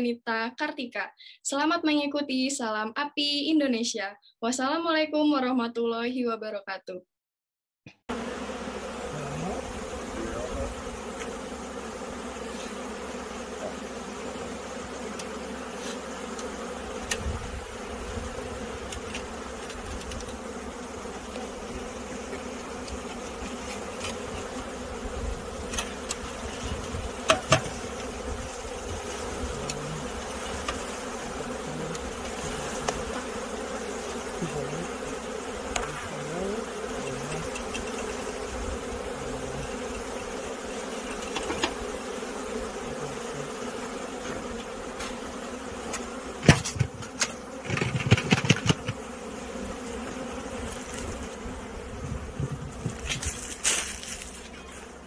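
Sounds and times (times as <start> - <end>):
bees buzzing: 8.1 - 55.0
rustling: 52.1 - 55.0.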